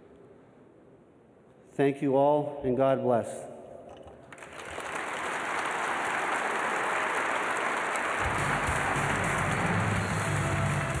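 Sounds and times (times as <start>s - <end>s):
audience applauding: 4.3s - 11.0s
music with low bass line: 8.2s - 11.0s.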